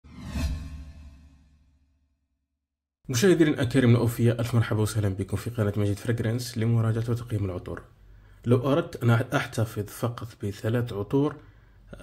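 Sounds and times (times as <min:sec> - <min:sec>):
whoosh with deep rumble: 0:00.0 - 0:01.6.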